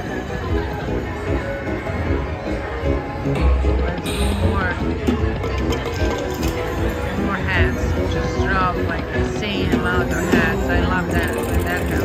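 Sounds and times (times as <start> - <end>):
bouncy slot machine music: 0.0 - 12.0.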